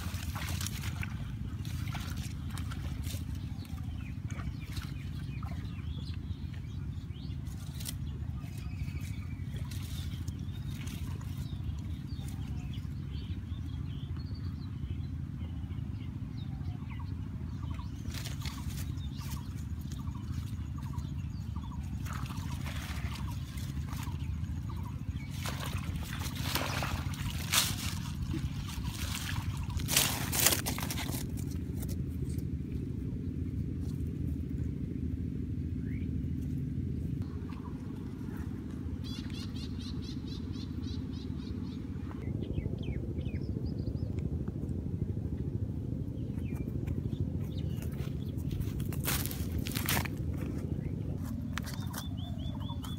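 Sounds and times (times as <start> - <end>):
water splashes: 0.0 - 12.8, 17.9 - 32.0
water sloshing: 0.0 - 13.4, 17.7 - 34.7
steady low rumble: 0.0 - 52.9
leaves rustling: 25.7 - 32.5, 48.0 - 50.6.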